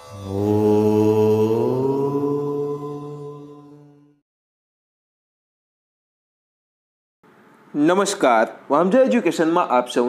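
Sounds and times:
low chanted vocal tone: 0.0 - 4.2.

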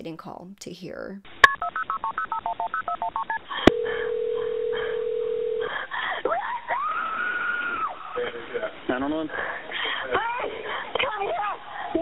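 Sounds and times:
touch-tone dialing beeps: 1.4 - 5.6
steady phone tone: 1.4 - 5.8
woman screaming: 6.3 - 8.0.

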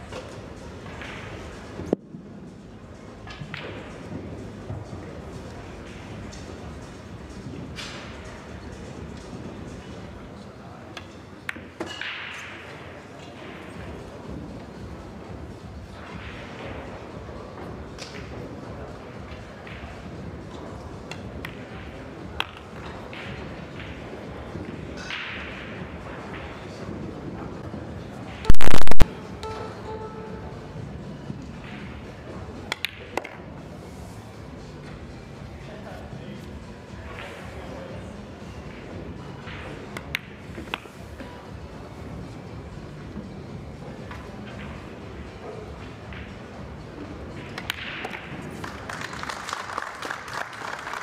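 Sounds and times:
murmur of voices: 0.0 - 51.0.

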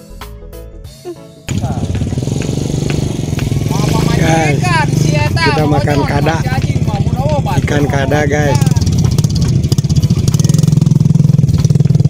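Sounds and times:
background music with a beat: 0.0 - 12.0
loud low engine hum: 1.5 - 12.0
man speaking: 3.6 - 8.8.

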